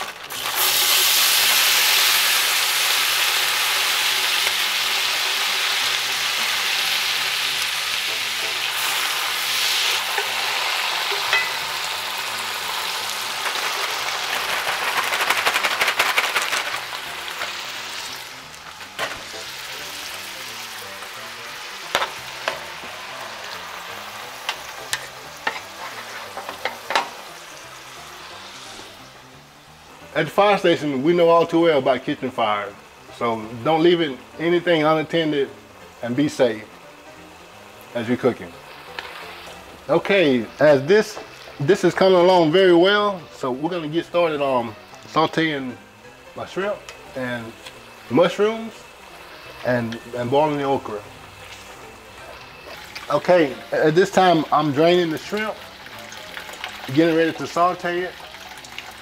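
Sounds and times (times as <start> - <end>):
food sizzling in a pot: 0.0 - 59.0.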